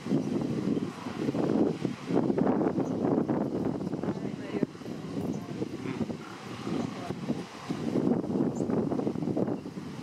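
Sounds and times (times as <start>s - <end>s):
surf breaking over rocks: 0.0s - 10.0s
wind buffeting microphone: 0.0s - 10.0s.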